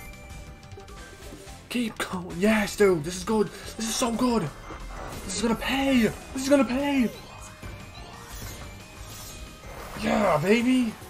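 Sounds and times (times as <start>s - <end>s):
slot game music: 0.0s - 11.0s
clattering game sound effects: 0.6s - 11.0s.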